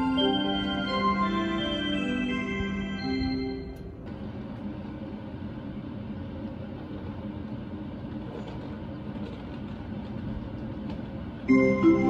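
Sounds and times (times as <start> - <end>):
stationary electric train humming: 0.0 - 12.0.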